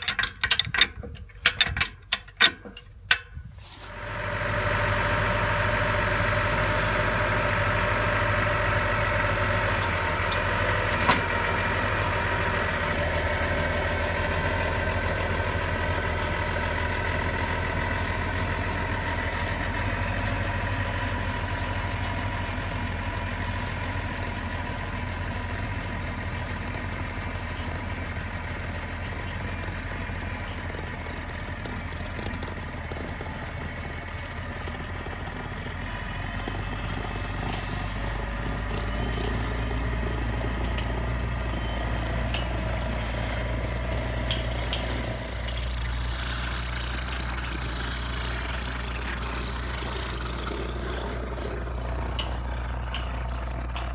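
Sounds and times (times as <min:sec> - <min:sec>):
tractor diesel engine running: 0:00.0 - 0:53.9.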